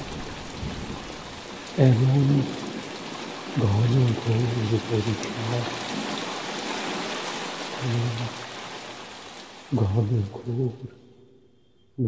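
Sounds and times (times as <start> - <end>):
steady rain hiss: 0.0 - 12.0
man's voice: 1.8 - 2.6, 3.6 - 5.7, 7.8 - 8.4, 9.7 - 11.2.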